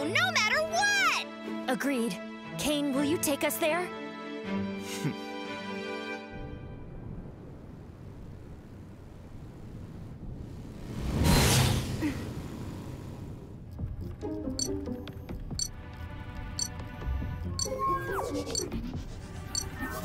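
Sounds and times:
electronic music with sharp beeps: 17.6 - 17.8.

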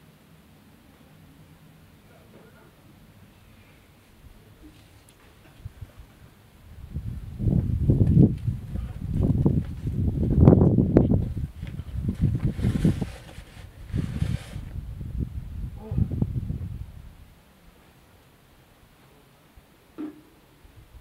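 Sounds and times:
wind buffeting microphone: 5.5 - 17.4.

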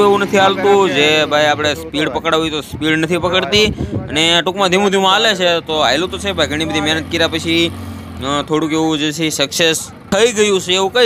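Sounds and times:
men talking and calling: 0.0 - 11.0.

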